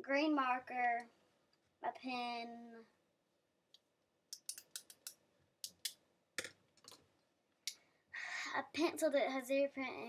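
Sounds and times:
pens and pencils clicking: 4.4s - 7.0s.

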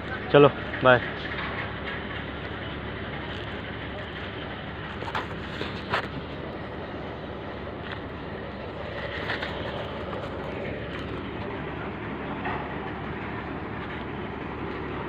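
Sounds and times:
heavy machinery running: 0.0s - 15.0s.

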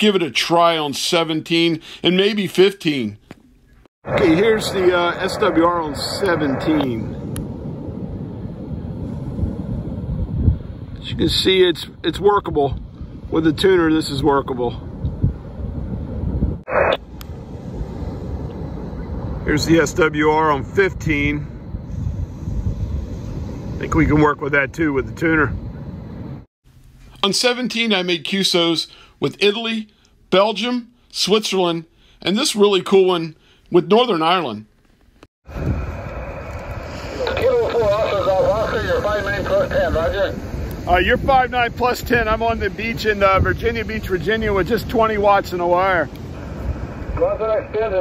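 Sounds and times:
wind buffeting microphone: 4.0s - 26.5s, 35.4s - 48.0s
man's voice over radio speaker: 4.1s - 7.2s, 37.1s - 46.1s, 47.2s - 48.0s.

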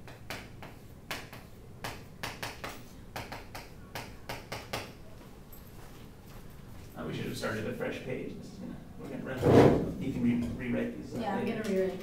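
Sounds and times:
chalk tapping and scraping on blackboard: 0.0s - 4.9s.

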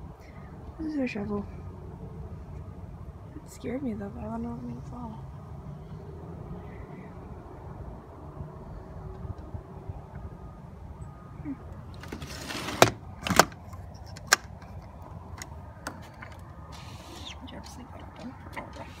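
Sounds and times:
sliding door scraping: 12.0s - 13.5s, 16.7s - 17.4s.

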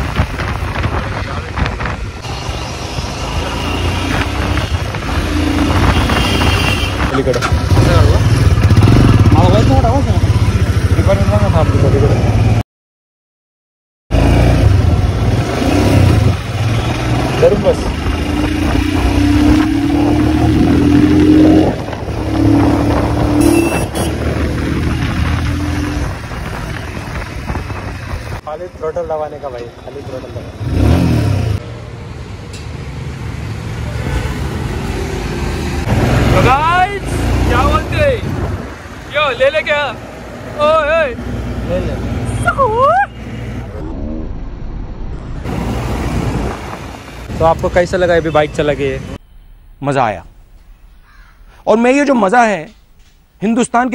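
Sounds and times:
road and traffic noise: 0.0s - 12.6s, 14.1s - 53.9s
voices talking: 36.1s - 43.6s.

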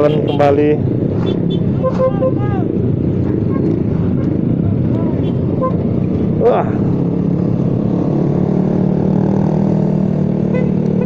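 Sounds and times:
motorcycle engines rumbling: 0.0s - 11.0s
voices calling: 1.3s - 5.8s.

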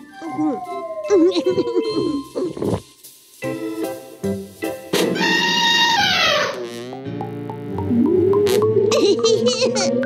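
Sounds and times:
cartoon background music: 0.0s - 2.8s, 3.4s - 10.0s.

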